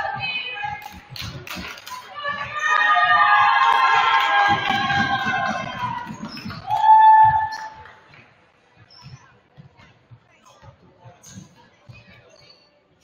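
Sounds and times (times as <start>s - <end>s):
basketball bouncing on wood floor: 4.5s - 7.7s.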